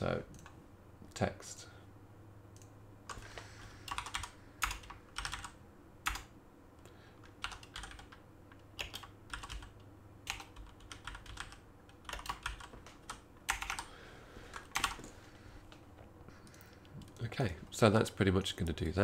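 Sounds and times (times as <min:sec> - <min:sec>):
typing on computer keyboard: 0:03.9 - 0:06.3, 0:07.2 - 0:13.9, 0:14.5 - 0:15.0.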